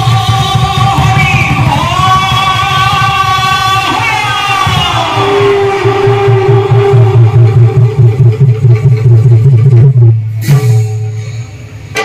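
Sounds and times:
fast rolling low drum beat: 0.0s - 11.0s
sharp drum strike: 4.6s - 12.0s.

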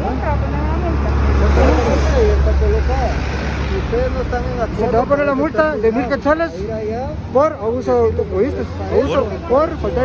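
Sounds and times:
vehicle rumble passing: 0.0s - 10.0s.

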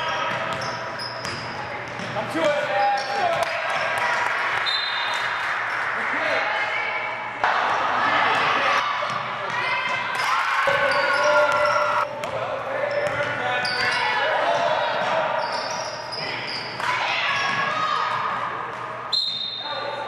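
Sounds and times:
referee's whistle: 4.6s - 5.1s, 19.1s - 19.7s.

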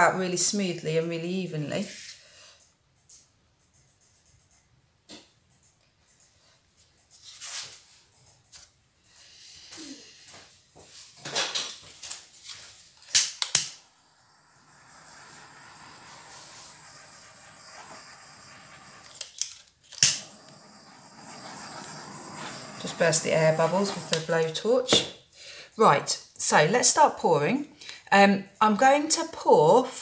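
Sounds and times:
blowtorch flame hissing: 13.8s - 19.4s, 20.0s - 24.6s
blowtorch clicks: 14.9s - 24.6s.

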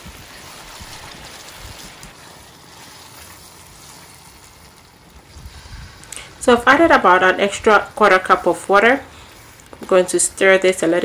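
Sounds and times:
stew bubbling in a pot: 0.0s - 11.0s.

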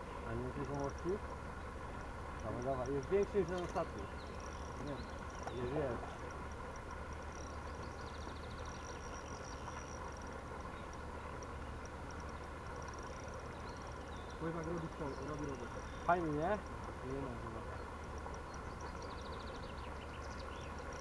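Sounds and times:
insect chirping: 0.0s - 21.0s.

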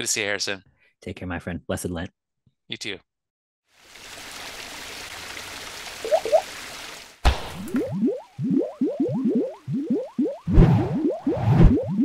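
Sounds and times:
short rising bloops: 6.0s - 6.4s, 7.6s - 12.0s.

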